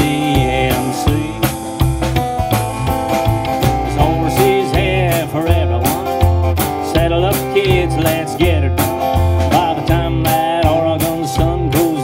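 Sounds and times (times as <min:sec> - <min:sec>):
drum kit beat: 0:00.0 - 0:12.0
strummed acoustic guitar: 0:00.0 - 0:12.0
upright bass line: 0:00.0 - 0:12.0.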